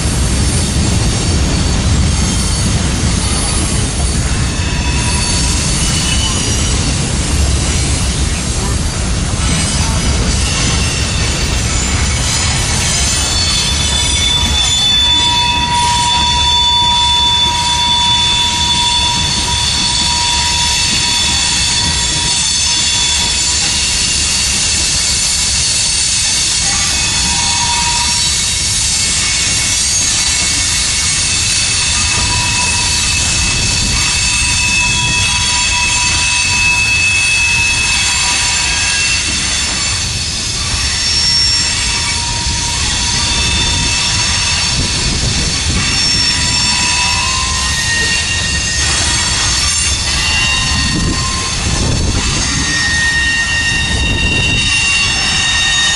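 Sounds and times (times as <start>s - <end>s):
wheels rumbling on rails: 0.0s - 55.9s
high wheel squeals: 0.4s - 55.9s.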